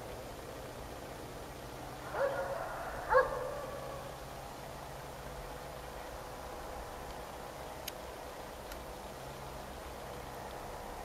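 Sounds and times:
dog barking: 2.1 - 3.8.

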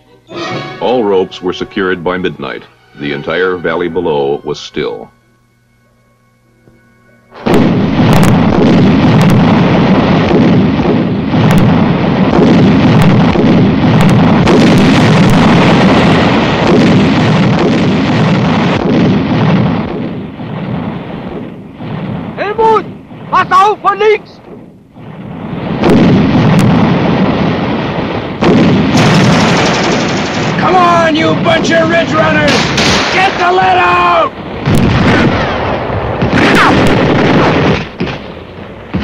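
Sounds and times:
explosions and gunfire: 7.4 - 39.0
men shouting: 33.2 - 34.3.

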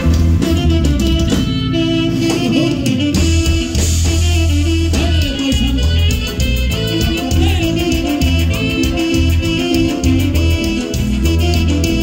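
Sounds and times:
deep bass line: 0.0 - 12.0
drums: 0.0 - 12.0
guitar: 0.0 - 12.0
live band playing dance music: 0.0 - 12.0.

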